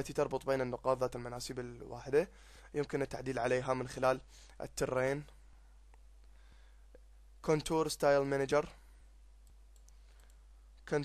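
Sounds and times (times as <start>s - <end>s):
computer mouse clicks: 9.4s - 10.4s.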